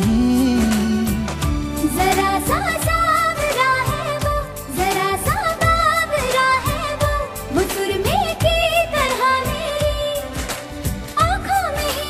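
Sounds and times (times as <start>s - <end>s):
beat and instrumental backing: 0.0s - 12.0s.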